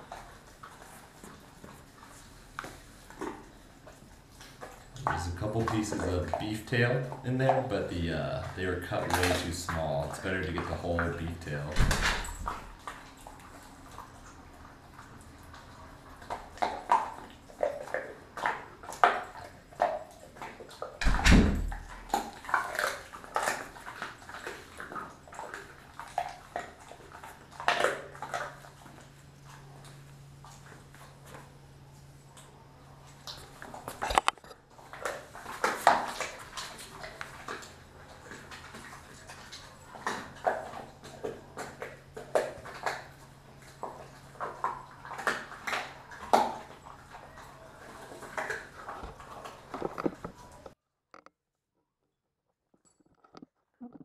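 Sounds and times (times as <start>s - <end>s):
dog chewing and crunching bone: 0.0s - 51.3s.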